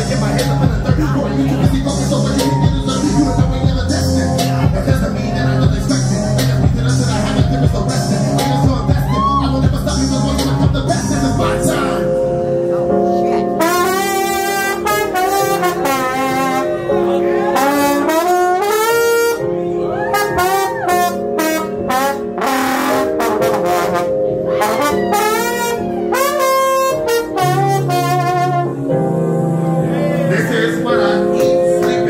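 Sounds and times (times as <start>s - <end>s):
live band playing: 10.4s - 32.0s
trombone solo sliding between notes: 13.6s - 29.0s.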